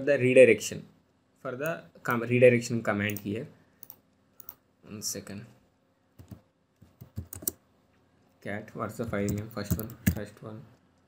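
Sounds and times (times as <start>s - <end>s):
keyboard key clicks: 9.0s - 10.2s.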